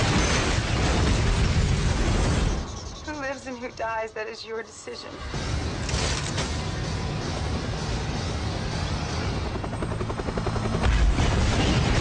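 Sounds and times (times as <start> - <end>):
helicopter rotor chopping: 5.6 - 12.0.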